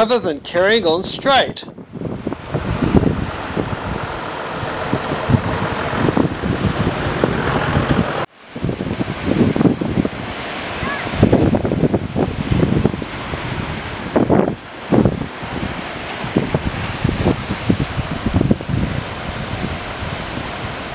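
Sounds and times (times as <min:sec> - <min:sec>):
surf washing over rocks: 0:00.0 - 0:20.9
wind buffeting microphone: 0:01.3 - 0:20.9.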